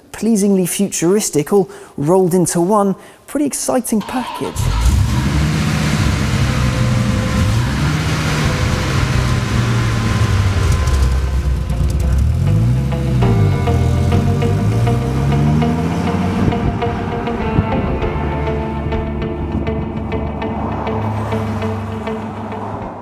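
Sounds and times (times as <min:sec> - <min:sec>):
car engine revving: 0:04.2 - 0:23.0
music playing: 0:11.2 - 0:23.0.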